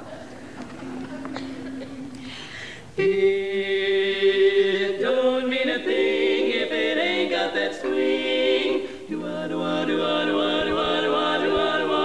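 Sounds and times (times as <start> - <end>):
women singing in close harmony: 3.0 - 12.0.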